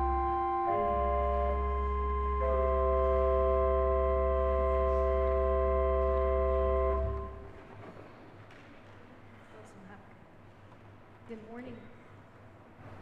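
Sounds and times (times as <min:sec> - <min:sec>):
pipe organ chord: 0:00.0 - 0:07.7.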